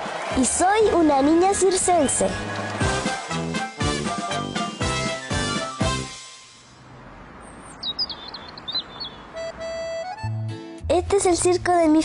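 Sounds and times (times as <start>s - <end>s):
soft outdoor hiss: 6.2s - 10.0s
birds chirping: 7.3s - 10.3s.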